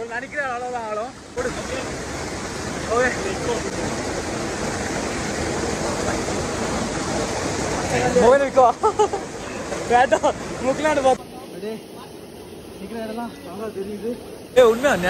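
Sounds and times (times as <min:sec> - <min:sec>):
waterfall pouring into pool: 0:00.1 - 0:15.0.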